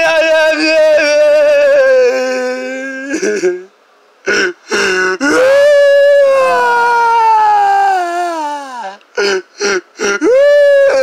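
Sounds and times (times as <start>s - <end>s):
person crying and wailing: 0.0s - 3.7s, 4.3s - 11.0s.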